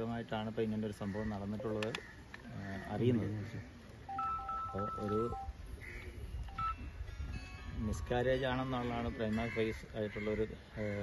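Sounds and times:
man speaking: 0:00.0 - 0:05.5
two-tone electronic beeps: 0:04.1 - 0:05.6, 0:06.4 - 0:07.0.

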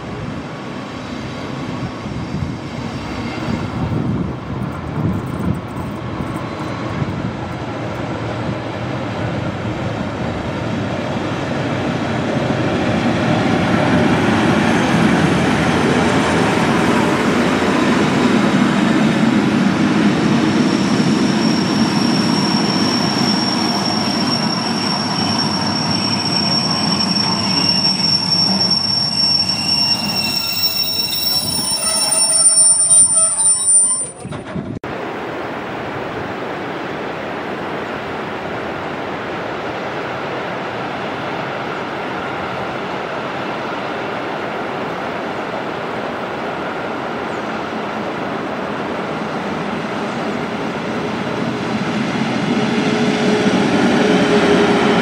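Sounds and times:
train rolling past: 0:00.0 - 0:55.0
wheel and brake squeal: 0:20.7 - 0:34.4.

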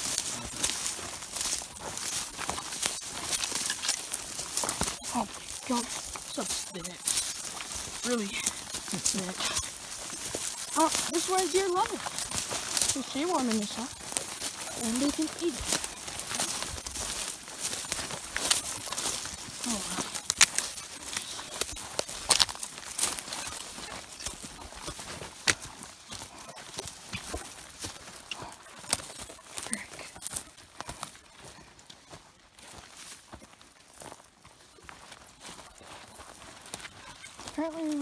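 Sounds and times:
twigs snapping: 0:00.0 - 0:25.8
stems scraping past legs: 0:00.0 - 0:30.4
boots crunching: 0:00.0 - 0:38.0.

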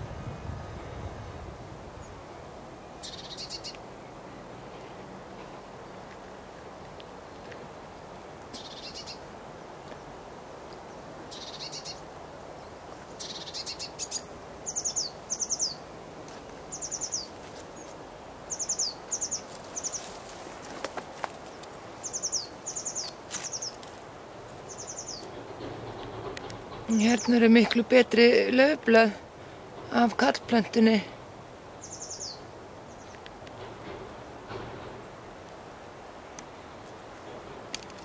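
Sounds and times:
songbird calling: 0:02.9 - 0:03.8, 0:08.5 - 0:09.2, 0:10.9 - 0:12.0, 0:12.6 - 0:15.9, 0:16.7 - 0:17.9, 0:18.5 - 0:20.2, 0:22.0 - 0:23.8, 0:24.6 - 0:25.5, 0:26.5 - 0:28.4, 0:31.8 - 0:33.2.

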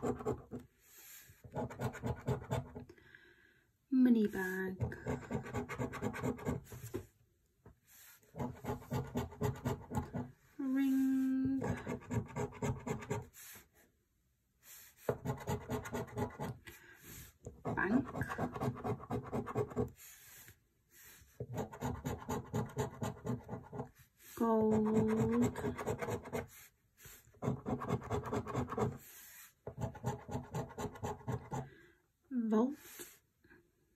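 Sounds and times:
scratch card being scratched: 0:05.0 - 0:07.0, 0:08.4 - 0:10.3, 0:17.8 - 0:20.0, 0:21.5 - 0:23.9, 0:24.8 - 0:26.6, 0:27.4 - 0:29.1.

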